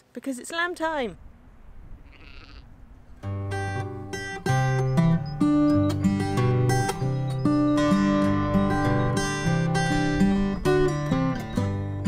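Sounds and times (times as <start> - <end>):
low wind rumble: 0.6 - 6.3
faint sheep bleat: 2.0 - 2.7.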